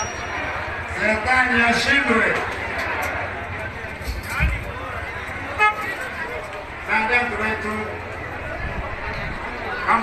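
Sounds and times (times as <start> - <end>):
street noise: 0.0 - 10.0
vehicle horn toot: 5.5 - 6.0.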